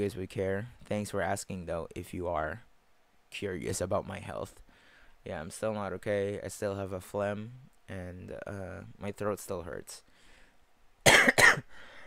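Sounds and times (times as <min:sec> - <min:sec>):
man coughing harshly: 0:11.0 - 0:11.8.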